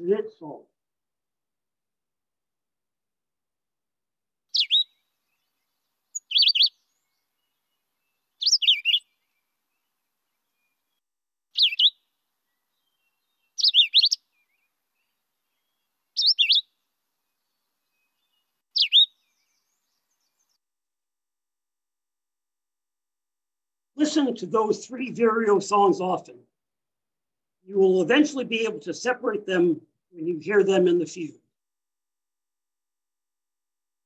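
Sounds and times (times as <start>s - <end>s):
bird singing high phrases: 4.5s - 20.6s.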